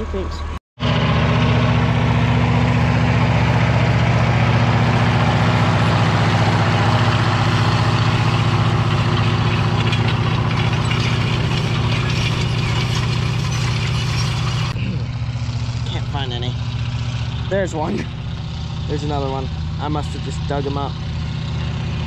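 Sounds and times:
tractor engine running: 0.0s - 22.0s
planter rattling and clanking: 0.8s - 22.0s.

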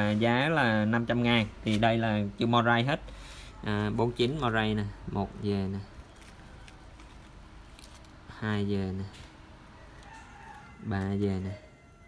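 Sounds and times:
man counting: 0.0s - 6.0s.

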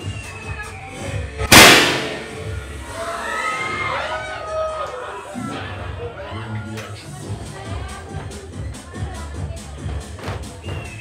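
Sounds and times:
confetti cannon bang: 1.5s - 2.6s.

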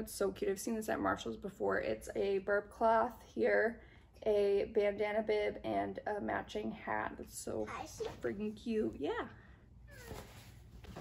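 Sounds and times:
girl saying yeah: 7.6s - 8.2s.

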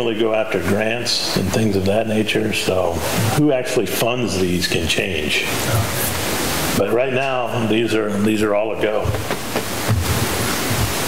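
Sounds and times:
loud steady hiss: 0.0s - 11.0s
faint low thuds: 3.0s - 3.5s, 9.0s - 11.0s.

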